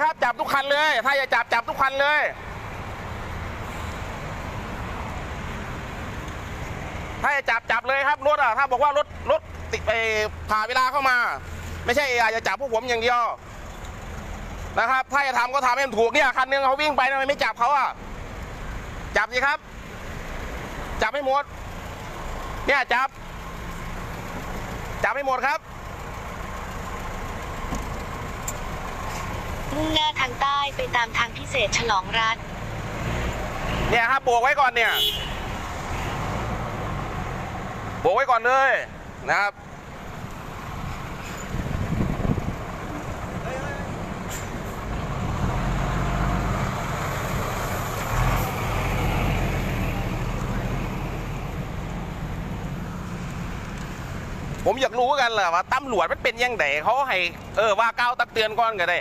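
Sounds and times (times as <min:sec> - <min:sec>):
vehicle engine idling: 0:00.0 - 0:32.8, 0:37.5 - 0:45.5
road traffic: 0:00.0 - 0:59.0.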